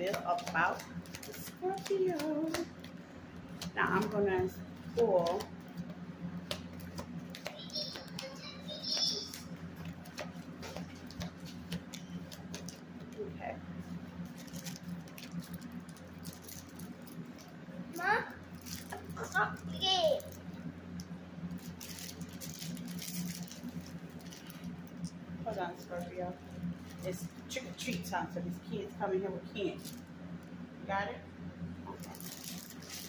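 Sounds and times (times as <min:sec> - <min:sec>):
cards being shuffled: 0:00.0 - 0:04.2, 0:04.8 - 0:13.2
steady low hum: 0:00.0 - 0:33.0.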